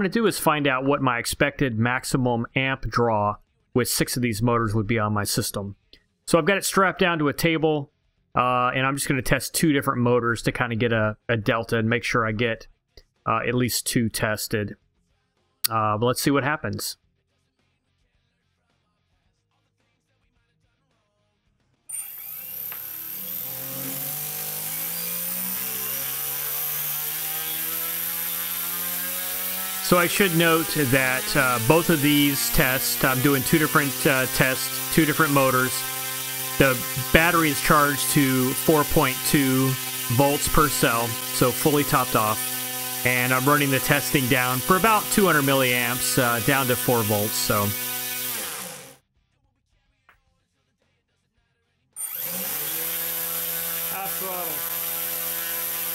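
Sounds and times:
electric propeller motor whirring: 21.9s - 49.0s, 52.0s - 55.9s.

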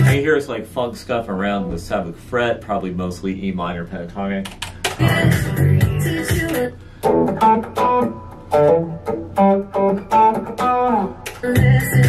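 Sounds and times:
electric guitar single-note riff: 7.1s - 12.0s.

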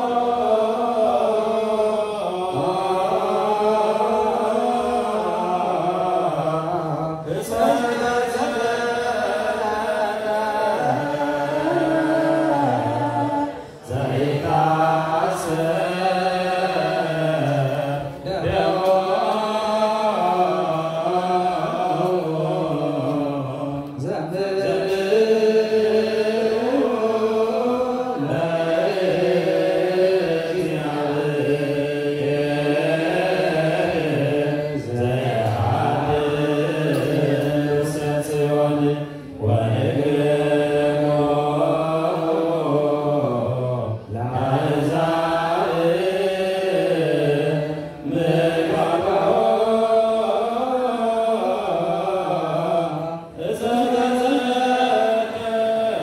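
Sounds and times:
clergy chanting together: 0.0s - 56.0s.

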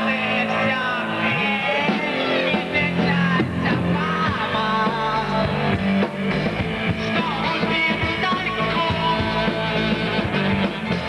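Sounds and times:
man singing into microphone: 0.0s - 5.8s, 7.0s - 10.9s
bass: 0.0s - 11.0s
drums: 0.0s - 11.0s
electric guitar: 0.0s - 11.0s.

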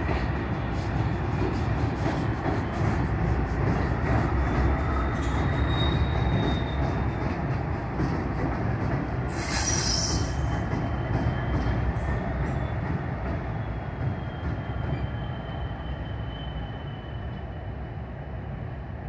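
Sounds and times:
locomotive engines and wheels rumbling: 0.0s - 19.0s
sharp high squeal: 4.9s - 7.0s, 9.3s - 10.6s, 14.1s - 17.5s
thin wheel squeal: 5.0s - 6.9s, 9.3s - 10.5s.

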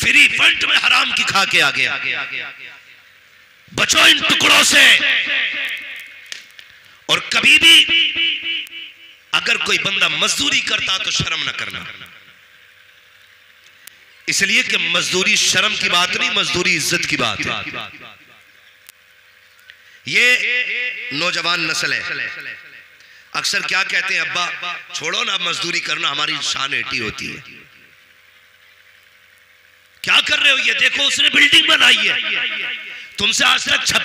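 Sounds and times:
faint background hiss: 0.0s - 34.0s.

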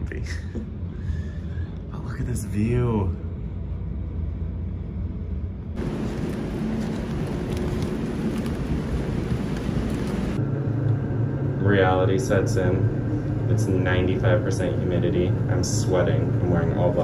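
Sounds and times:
steady low hum: 0.0s - 17.0s
traffic rumble: 0.0s - 17.0s.

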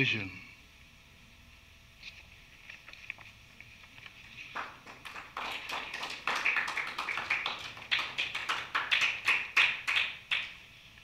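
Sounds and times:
audience clapping: 4.5s - 10.6s.

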